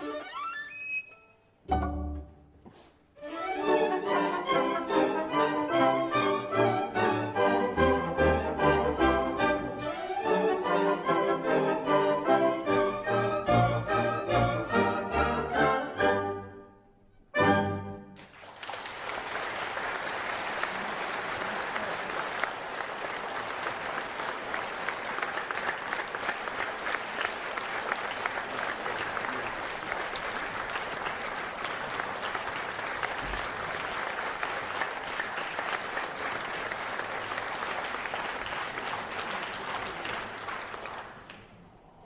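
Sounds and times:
audience applauding: 18.1 - 42.0.

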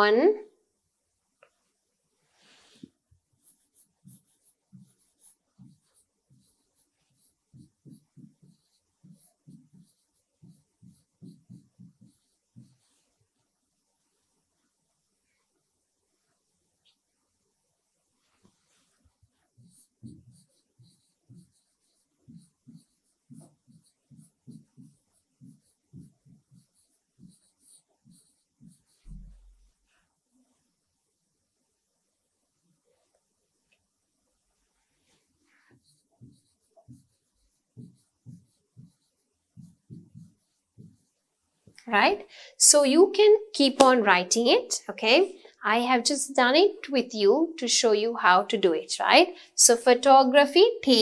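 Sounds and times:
stylus tapping on a screen: 7.5 - 12.8.

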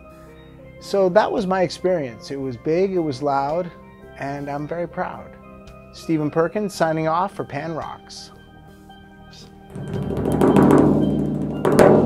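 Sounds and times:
drum hits: 9.7 - 12.0.

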